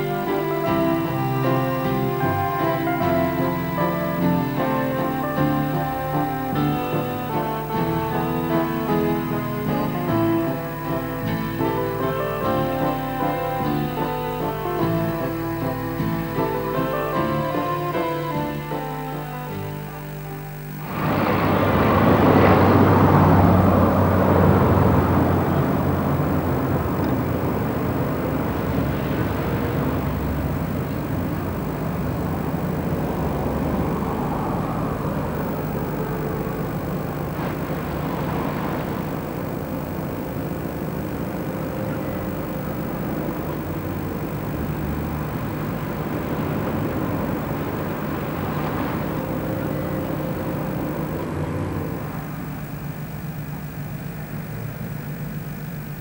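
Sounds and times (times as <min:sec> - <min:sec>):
bus passing close: 0:00.0 - 0:56.0
steady traffic rumble: 0:00.0 - 0:56.0.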